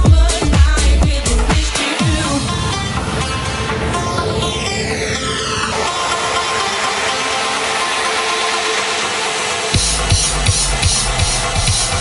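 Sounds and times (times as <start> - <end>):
electronic dance music breakdown: 0.0 - 12.0.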